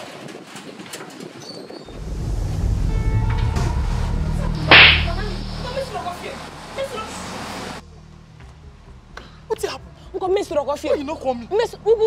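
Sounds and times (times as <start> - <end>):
loud slap across a face: 4.7 - 5.2.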